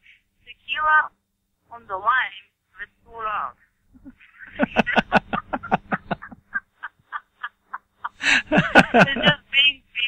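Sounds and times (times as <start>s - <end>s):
person laughing: 3.9s - 9.4s.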